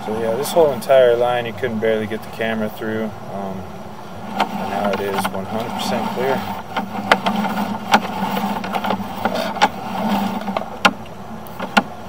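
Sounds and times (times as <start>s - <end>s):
steady mechanical hum: 0.0s - 12.0s
sharp clicks and knocks: 4.2s - 12.0s.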